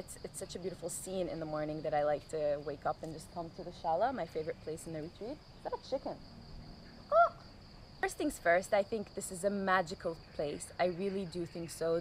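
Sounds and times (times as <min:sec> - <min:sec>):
high drone of insects: 0:00.0 - 0:12.0.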